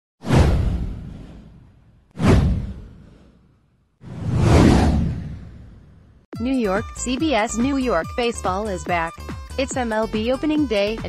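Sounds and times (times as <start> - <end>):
downward whoosh: 4.0 - 5.9.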